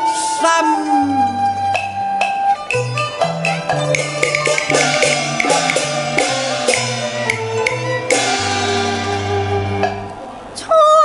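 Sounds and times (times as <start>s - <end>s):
opera band playing: 0.0s - 10.4s
woman singing: 0.3s - 1.4s, 10.6s - 11.0s
sharp percussion strikes: 1.8s - 10.0s.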